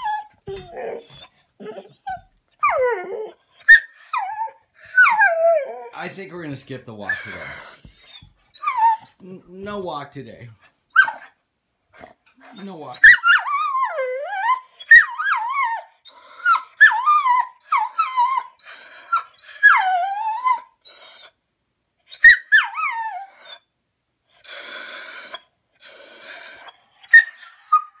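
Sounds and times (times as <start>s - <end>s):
dog whining and yowling: 0.0s - 6.0s, 7.0s - 9.2s, 10.9s - 11.4s, 12.0s - 21.4s, 22.0s - 23.7s, 24.4s - 28.0s
dog breathy huffs: 7.1s - 9.2s.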